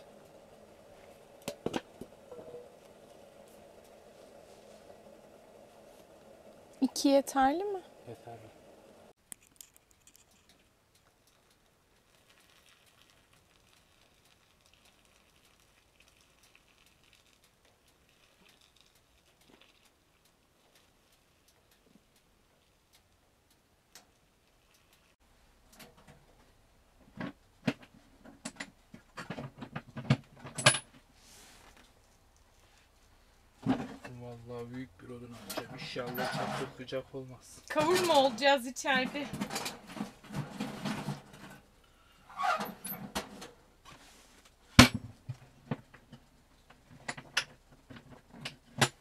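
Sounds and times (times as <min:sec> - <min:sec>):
hot water pouring into teapot: 0:11.2 - 0:21.5.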